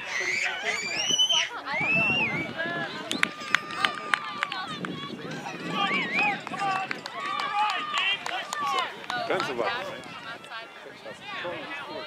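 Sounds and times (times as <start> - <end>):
distant voices shouting: 0.0 - 11.9.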